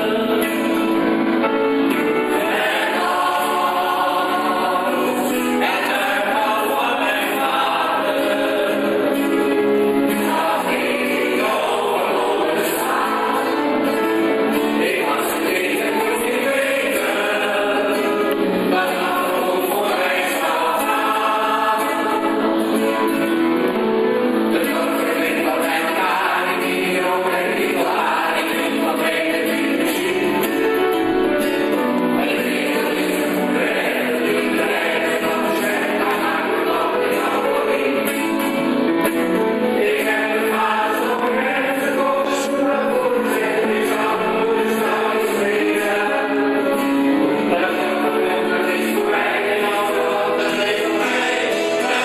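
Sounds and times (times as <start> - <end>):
choir singing reggae song: 0.0 - 52.0.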